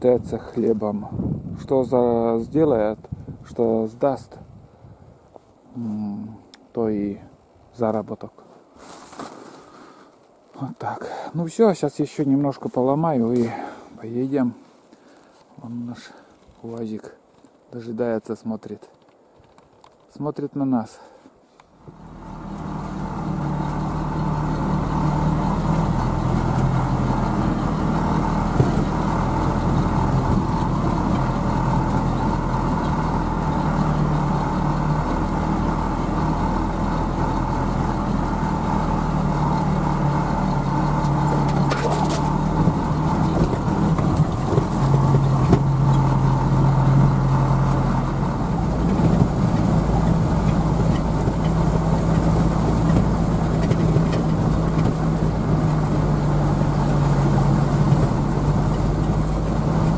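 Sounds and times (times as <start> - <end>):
truck engine running: 21.8 - 59.9.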